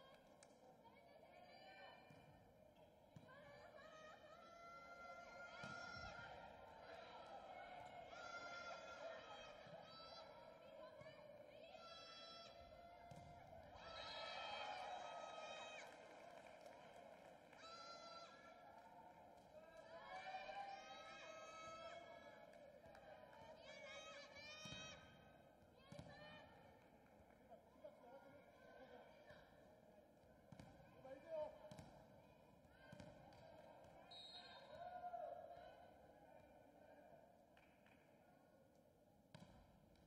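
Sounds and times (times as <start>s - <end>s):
faint crowd chanting and shouting: 0.0s - 38.7s.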